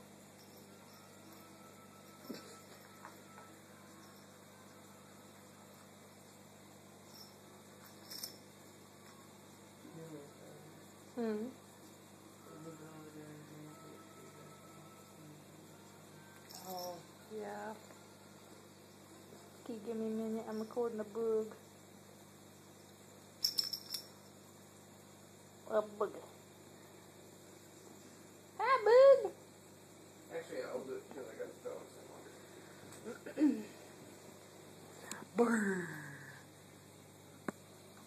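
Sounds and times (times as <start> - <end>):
cat collar tag jingling: 7.1 - 8.4, 16.5 - 17.1, 23.4 - 24.3.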